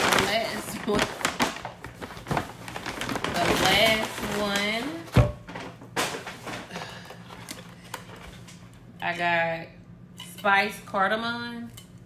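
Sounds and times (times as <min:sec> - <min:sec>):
paper and bag rustling: 0:00.0 - 0:06.7.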